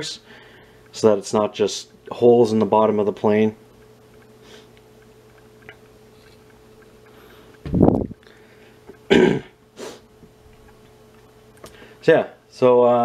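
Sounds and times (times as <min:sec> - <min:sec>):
faint steady hum: 0:00.0 - 0:13.0
sniff: 0:04.4 - 0:04.7, 0:09.8 - 0:10.1
man clearing his throat: 0:09.1 - 0:09.6
man coughing: 0:09.1 - 0:09.6.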